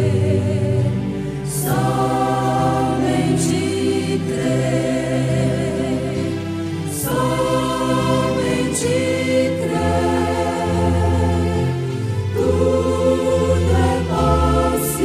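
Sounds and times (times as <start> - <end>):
gospel choir singing: 0.0 - 15.0.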